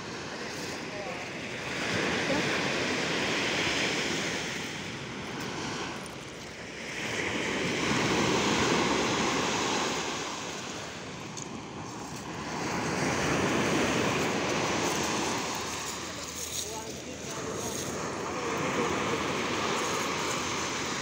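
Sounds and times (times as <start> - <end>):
surf breaking on beach: 0.0 - 21.0.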